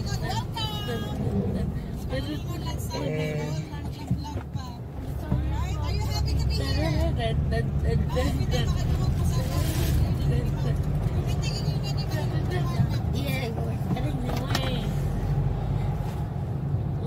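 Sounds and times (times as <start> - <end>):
road and engine rumble: 0.0 - 17.0.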